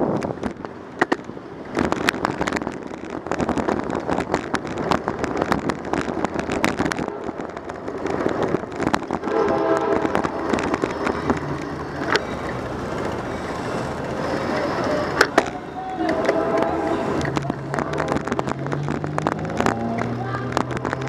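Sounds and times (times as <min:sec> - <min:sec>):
bicycle road rumble and rattling: 0:00.0 - 0:21.0.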